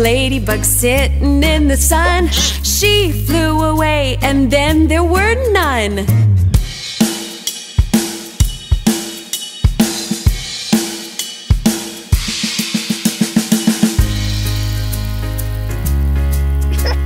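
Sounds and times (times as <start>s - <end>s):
drum kit playing: 2.0s - 3.4s, 6.6s - 15.1s.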